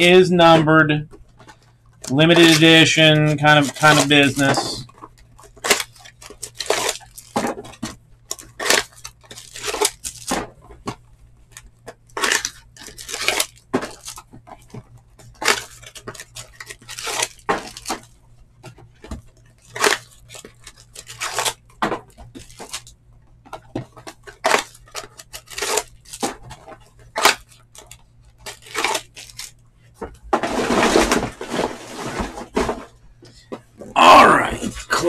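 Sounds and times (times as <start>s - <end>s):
foil packs crinkling: 1.4s - 10.9s, 11.5s - 23.0s, 23.6s - 29.6s, 30.3s - 32.9s
foil tearing: 2.0s - 10.5s, 11.5s - 18.1s, 19.4s - 22.9s, 23.9s - 29.6s, 30.4s - 32.8s.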